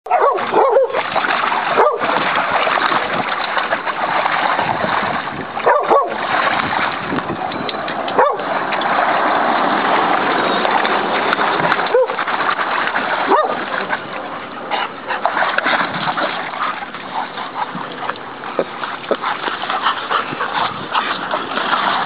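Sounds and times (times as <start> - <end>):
water splashing: 0.0 - 22.0.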